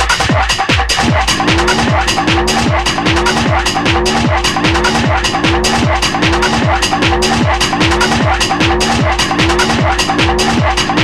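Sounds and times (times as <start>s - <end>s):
fast electronic dance music: 0.0s - 11.0s
hi-hats: 0.0s - 11.0s
kick drum: 0.0s - 11.0s
upward-gliding synth tone: 1.1s - 8.9s.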